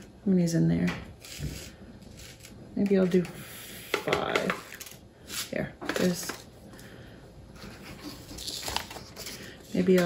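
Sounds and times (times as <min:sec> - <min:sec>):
paper rustling: 0:07.9 - 0:10.0.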